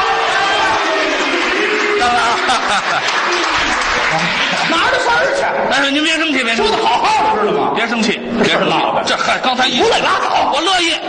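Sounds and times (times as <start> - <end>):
audience applauding: 0.0 - 5.5.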